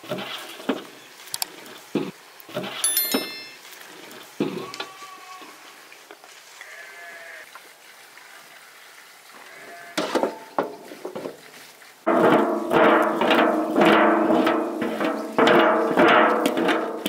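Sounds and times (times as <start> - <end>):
glass jars clinking: 2.8 - 3.7
sheep bleating: 4.5 - 5.7, 6.6 - 7.5, 9.4 - 10.2.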